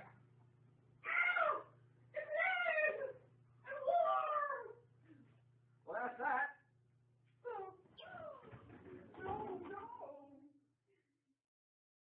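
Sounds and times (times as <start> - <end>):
high-pitched meow-like cries: 1.0 - 1.7.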